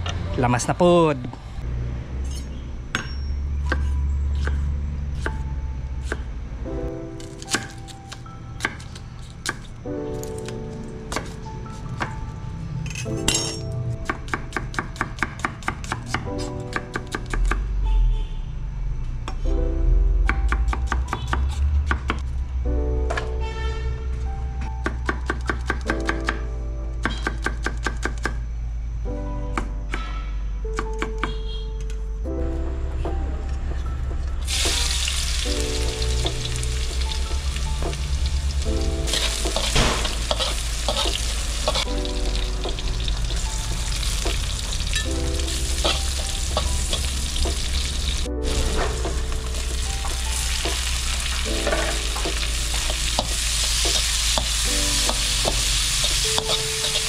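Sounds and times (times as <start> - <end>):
background music: 3.6 - 57.0
food sizzling in hot oil: 34.5 - 57.0
metal spatula stirring: 39.1 - 41.9.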